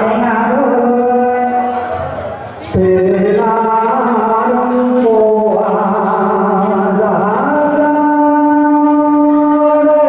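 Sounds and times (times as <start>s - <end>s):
man singing through a pa: 0.0s - 10.0s.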